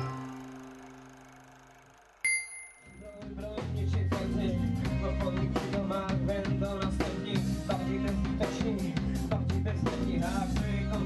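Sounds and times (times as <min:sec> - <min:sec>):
bright bell ding: 0:02.2 - 0:03.2.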